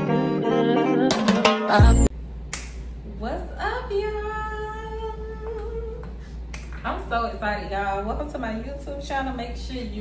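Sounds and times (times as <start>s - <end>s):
intro music: 0.0s - 2.1s
finger snap: 2.5s - 3.0s, 6.0s - 6.8s.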